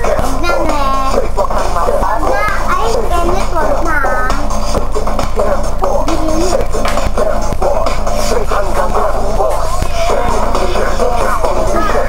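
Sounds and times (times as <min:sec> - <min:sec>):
young children's voices: 0:00.0 - 0:04.5, 0:06.0 - 0:06.7, 0:09.8 - 0:12.0.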